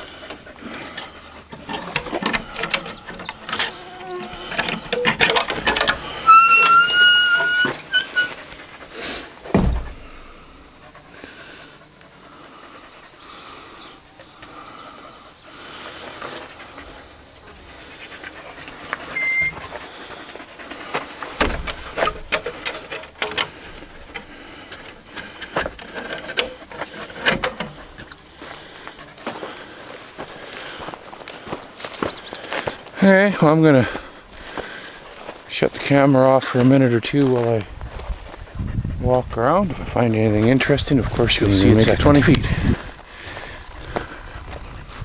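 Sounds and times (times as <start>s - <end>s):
footsteps crunching through dry grass: 28.3s - 35.5s, 36.2s - 38.6s, 41.6s - 45.0s.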